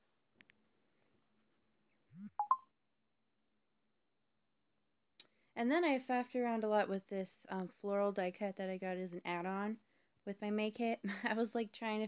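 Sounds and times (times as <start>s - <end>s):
quick electronic beeps: 2.3s - 2.6s.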